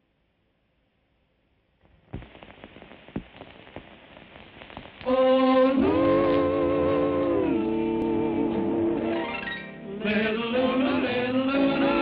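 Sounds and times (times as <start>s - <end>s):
old film crackling and pops: 1.8s - 9.0s.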